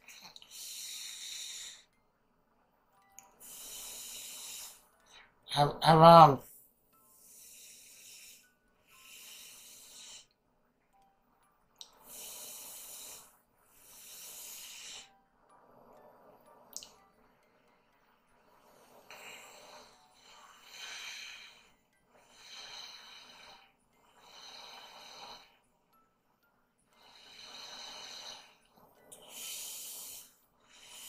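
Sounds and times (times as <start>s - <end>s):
person breathing noisily: 0.0s - 2.0s, 3.4s - 5.4s, 6.5s - 10.4s, 12.0s - 15.2s, 18.5s - 25.6s, 26.9s - 31.0s.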